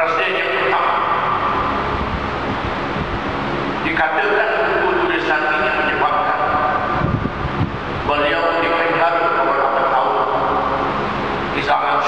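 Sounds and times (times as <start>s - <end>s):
people talking: 0.0s - 1.2s, 3.8s - 6.6s, 8.1s - 10.4s, 11.6s - 12.0s
air noise on microphone: 0.0s - 12.0s
electric fans running: 0.0s - 12.0s.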